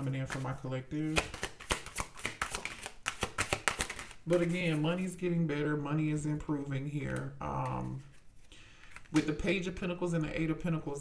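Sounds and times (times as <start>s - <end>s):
cards being shuffled: 0.0s - 5.2s, 7.0s - 9.6s.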